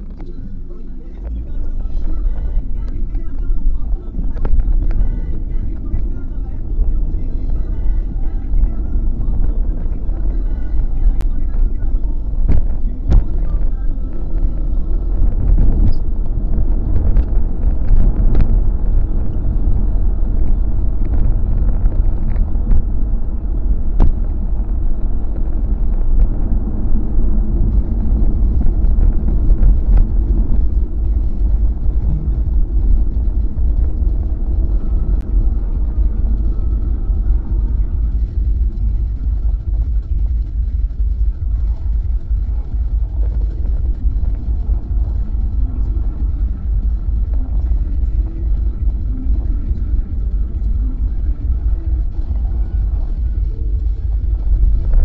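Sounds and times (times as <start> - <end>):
road and engine rumble: 0.0 - 55.0.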